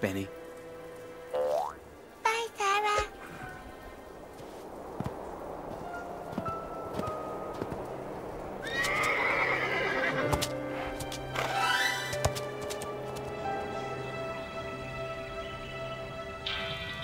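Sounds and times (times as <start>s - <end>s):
soft background music: 0.0s - 17.0s
cartoon horse whinnying: 8.6s - 10.2s.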